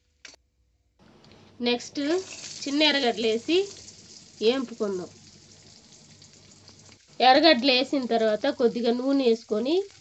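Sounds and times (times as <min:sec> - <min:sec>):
hot oil sizzling: 0:01.6 - 0:10.0.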